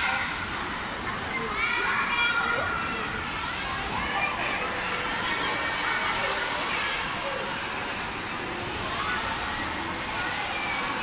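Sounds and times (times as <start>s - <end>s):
hubbub of children's voices: 0.0s - 11.0s.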